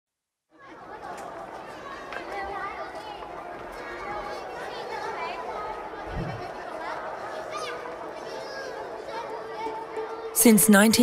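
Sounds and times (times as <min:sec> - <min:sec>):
chatter of many people: 0:00.5 - 0:11.0.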